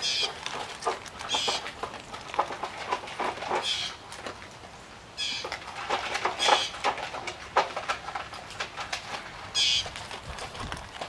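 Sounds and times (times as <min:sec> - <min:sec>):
dog eating from plastic bowl: 0:00.0 - 0:11.0.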